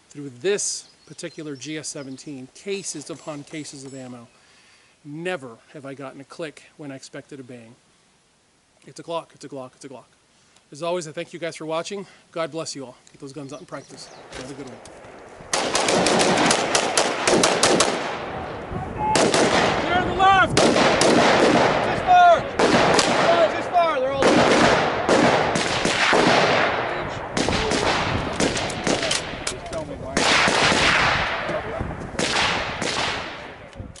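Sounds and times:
rapid gunfire: 0:15.5 - 0:18.3, 0:19.2 - 0:19.8, 0:20.6 - 0:21.9, 0:22.6 - 0:23.6, 0:24.2 - 0:29.2, 0:30.2 - 0:31.4, 0:32.2 - 0:33.4.

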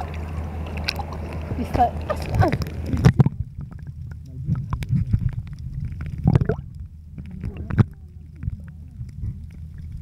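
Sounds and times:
water splash: 0:00.0 - 0:06.7
gurgling water surge: 0:00.0 - 0:10.0
muffled underwater rumble: 0:00.0 - 0:10.0.

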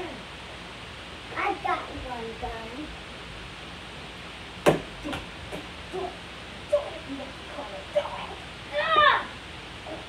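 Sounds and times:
child's voice: 0:01.3 - 0:02.9, 0:05.9 - 0:10.0
sharp knock: 0:04.6 - 0:05.6.

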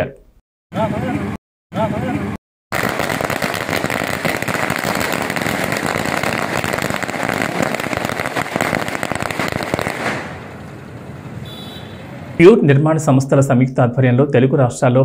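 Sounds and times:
firecrackers crackling: 0:02.7 - 0:10.9.

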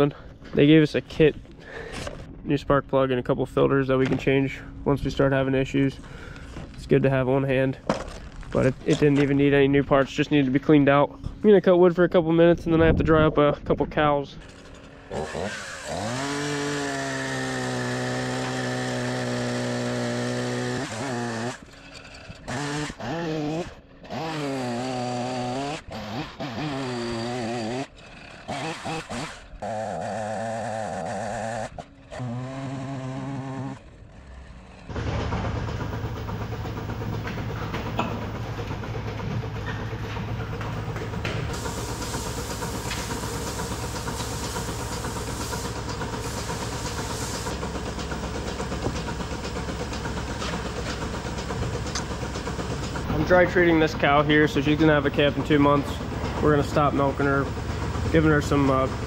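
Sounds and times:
chainsaw cutting logs: 0:14.4 - 0:59.0
milking machinery hiss and hum: 0:34.9 - 0:59.0.

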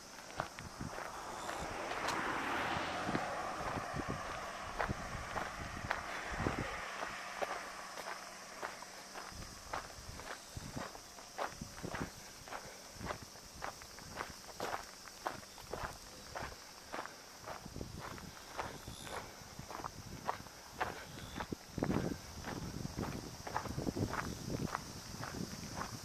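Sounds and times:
footsteps on gravel: 0:00.0 - 0:02.4, 0:03.1 - 0:26.0.

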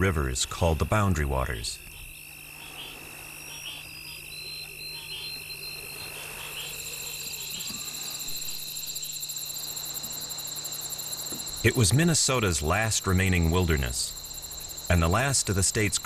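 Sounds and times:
crickets chirring: 0:00.0 - 0:16.0.

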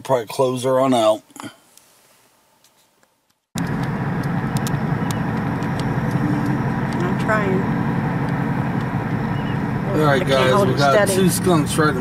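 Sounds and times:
car engine and road noise: 0:03.2 - 0:12.0.

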